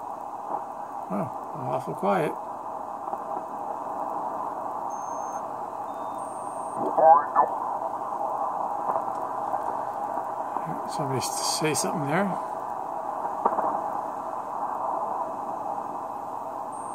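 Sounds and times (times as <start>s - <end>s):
radio band hiss: 0.0s - 16.9s.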